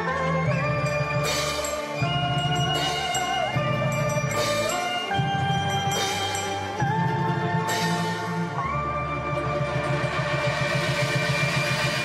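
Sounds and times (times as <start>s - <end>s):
synthesized theme music: 0.0s - 12.0s.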